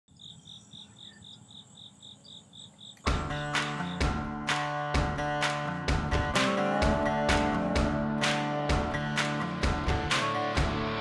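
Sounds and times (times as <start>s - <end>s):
crickets chirping: 0.1s - 4.1s.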